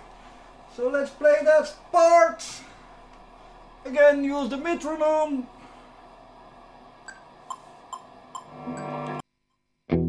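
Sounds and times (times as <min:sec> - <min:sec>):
metronome clicking: 0:07.1 - 0:08.9.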